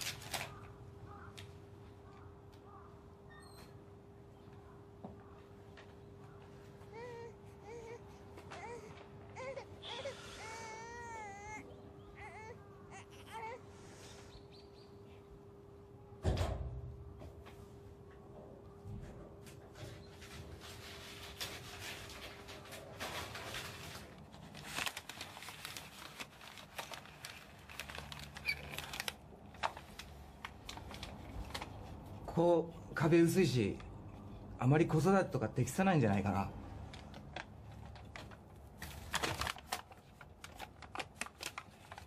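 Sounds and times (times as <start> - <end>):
infant crying: 6.8 - 13.8.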